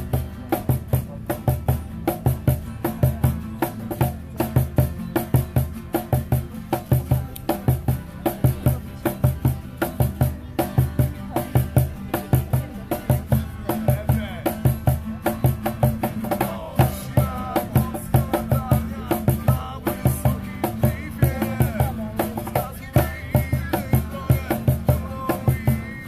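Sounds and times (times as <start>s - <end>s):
cajon beating a rhythm: 0.0s - 26.0s
strummed acoustic guitars: 0.0s - 26.0s
man singing: 12.5s - 26.0s.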